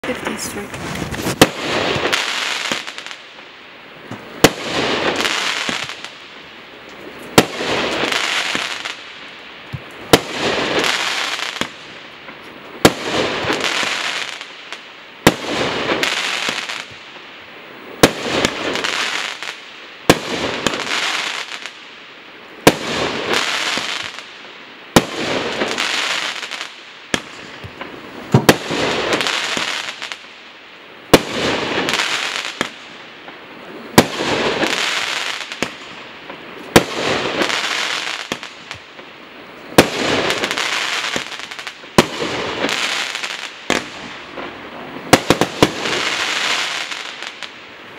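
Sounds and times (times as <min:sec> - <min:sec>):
firework shots: 0:00.0 - 0:06.5, 0:07.1 - 0:17.3, 0:17.9 - 0:21.9, 0:22.6 - 0:30.4, 0:31.0 - 0:47.7
firework stars crackling: 0:00.0 - 0:47.9.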